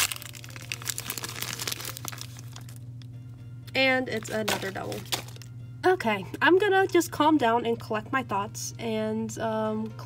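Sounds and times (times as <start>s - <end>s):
plastic packaging crinkling: 0.0s - 2.9s, 4.1s - 5.5s.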